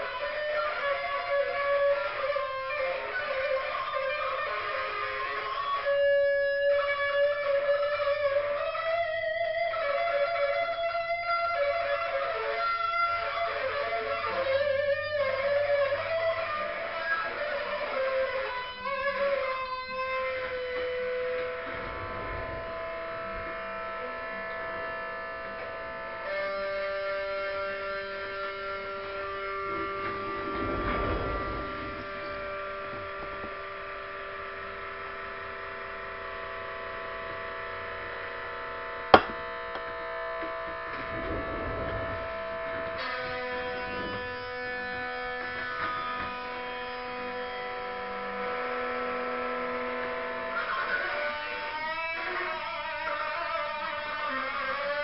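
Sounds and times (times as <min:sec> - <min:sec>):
musical drone of held chords: 0:14.1 - 0:53.2
sharp click: 0:39.2 - 0:39.9.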